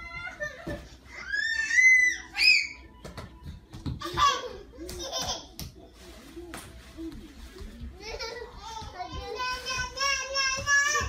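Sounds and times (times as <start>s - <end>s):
toddlers squealing and laughing: 0.0s - 2.9s.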